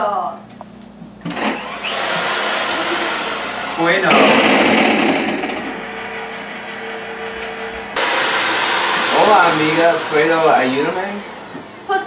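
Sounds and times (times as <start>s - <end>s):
blender motor whirring: 1.3s - 12.0s.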